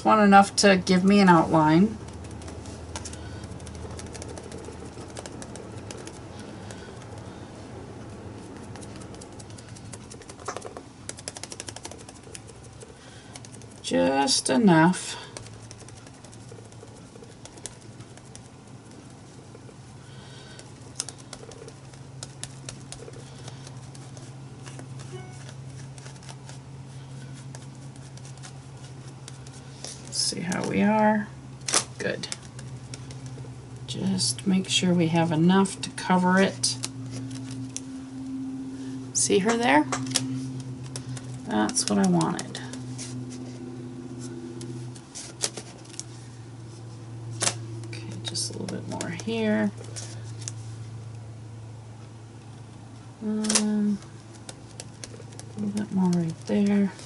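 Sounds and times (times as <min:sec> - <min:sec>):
woman's voice: 0:00.0 - 0:02.0, 0:13.8 - 0:15.3, 0:30.1 - 0:31.4, 0:32.0 - 0:32.4, 0:33.9 - 0:36.8, 0:39.1 - 0:40.0, 0:41.4 - 0:42.9, 0:48.0 - 0:49.8, 0:53.2 - 0:54.1, 0:55.6 - 0:57.0
steady low hum: 0:00.0 - 0:57.0
sponge dabbing on paper: 0:01.0 - 0:07.4, 0:08.0 - 0:30.9, 0:38.8 - 0:50.8, 0:54.2 - 0:57.0
sponge tapping on paper: 0:02.0 - 0:07.2, 0:08.6 - 0:12.6.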